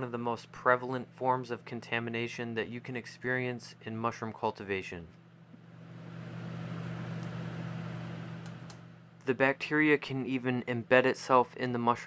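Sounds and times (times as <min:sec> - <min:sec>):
fan hum with rushing air: 0:00.0 - 0:12.0.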